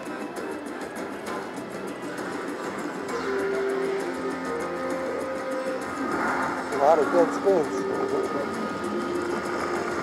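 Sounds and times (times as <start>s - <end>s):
slot machine game music: 0.0s - 10.0s.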